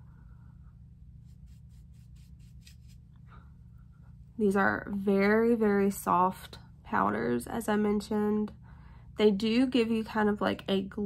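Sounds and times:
powder brush swishing: 1.1s - 3.1s.

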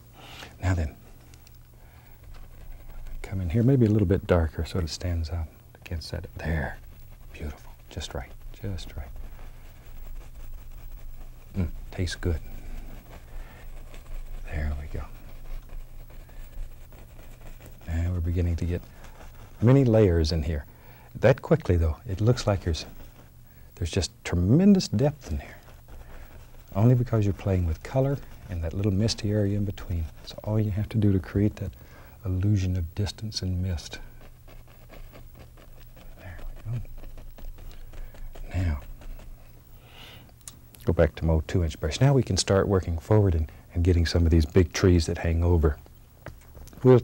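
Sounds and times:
paint brush on canvas: 0.0s - 47.0s
steady low hum: 0.0s - 47.0s.

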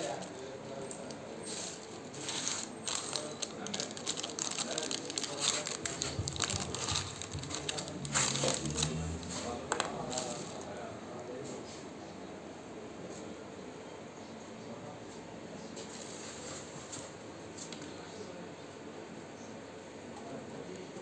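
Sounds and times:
plastic and foil crinkling: 0.0s - 10.8s.

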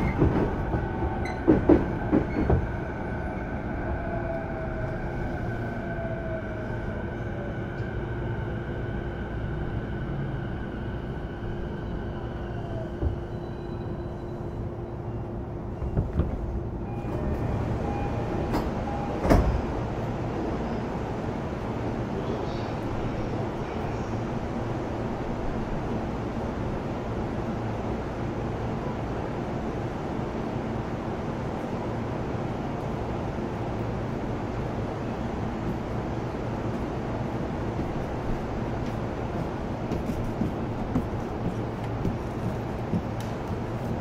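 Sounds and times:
train wheels rumbling on rail: 0.0s - 44.0s.

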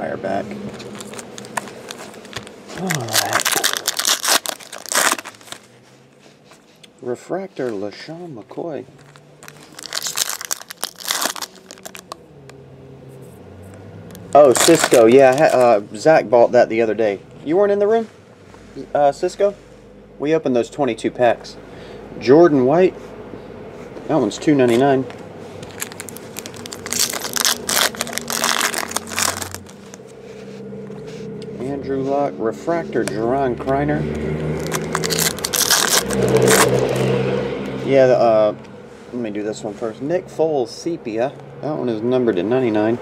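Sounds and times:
foil pack crinkling and tearing: 0.7s - 5.7s, 9.0s - 12.2s, 14.2s - 15.8s, 25.6s - 30.1s, 34.4s - 37.1s.

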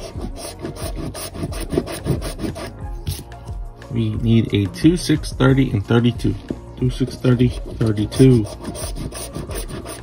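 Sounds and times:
coin scratching ticket: 8.2s - 10.0s.

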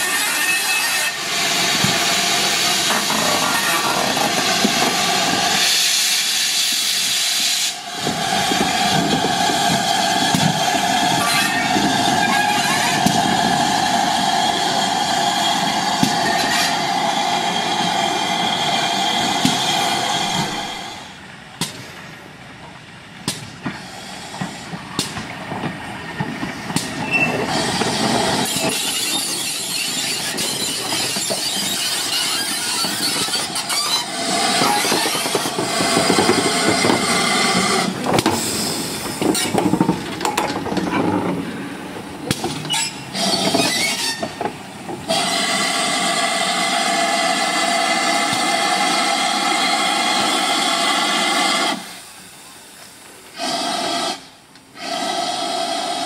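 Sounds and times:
steam locomotive hissing steam: 0.0s - 22.5s, 23.2s - 56.0s.

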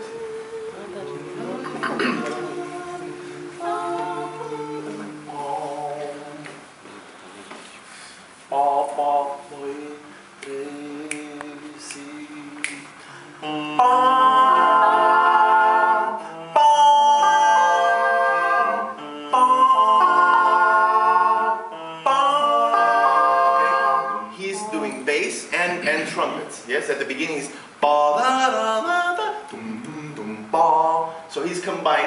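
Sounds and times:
a cappella group singing: 0.0s - 7.8s, 8.4s - 26.4s, 27.4s - 32.0s.

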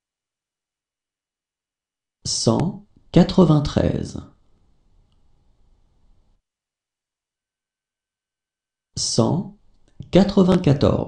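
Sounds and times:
person speaking: 2.2s - 4.4s, 9.0s - 11.0s.

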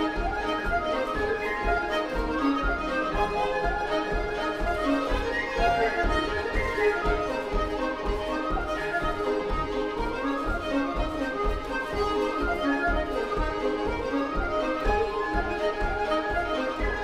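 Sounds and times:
button accordion: 0.0s - 17.0s
fiddle: 0.0s - 17.0s.

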